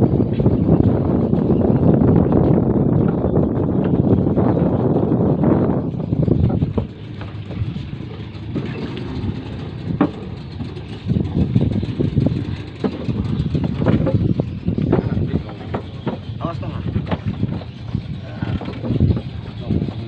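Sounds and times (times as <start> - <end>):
boat engine idling: 0.0 - 20.0
sharp knocks: 14.8 - 17.7.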